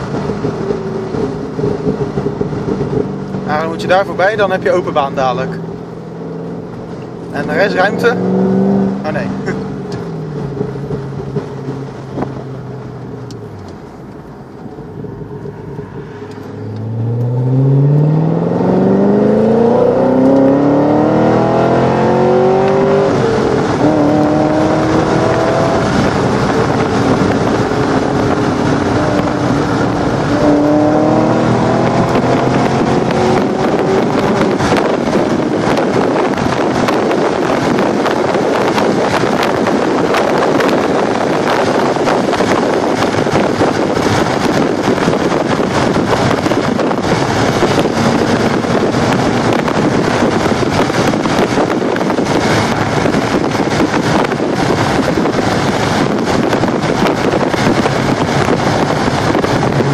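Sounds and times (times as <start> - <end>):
car engine accelerating: 0.0 - 59.9
road noise: 0.0 - 59.9
rushing wind: 0.0 - 59.9.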